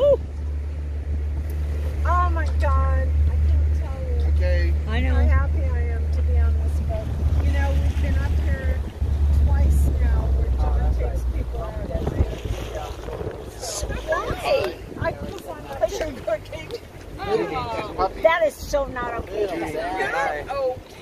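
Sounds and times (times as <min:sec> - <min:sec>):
boat motor rumbling: 0:00.0 - 0:21.0
wind buffeting microphone: 0:00.0 - 0:21.0
people chatting: 0:02.0 - 0:20.8.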